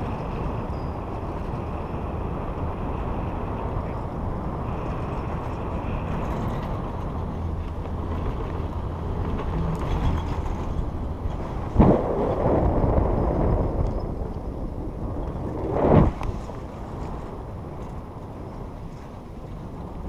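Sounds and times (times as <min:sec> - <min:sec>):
wind: 0:00.0 - 0:20.0.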